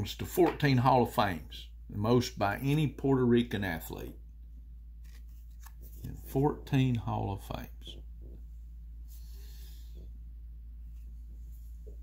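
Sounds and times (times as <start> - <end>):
card rustling on cloth: 5.0 - 6.3.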